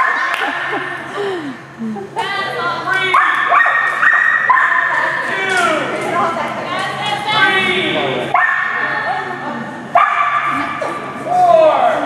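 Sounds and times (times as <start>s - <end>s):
people's voices: 0.0s - 3.6s, 4.4s - 12.0s
dog barking and yipping: 3.2s - 5.0s.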